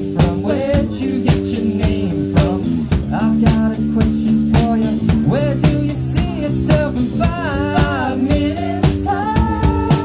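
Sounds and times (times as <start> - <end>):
electric guitar chords: 0.0 - 10.0
steady drum beat: 0.0 - 10.0.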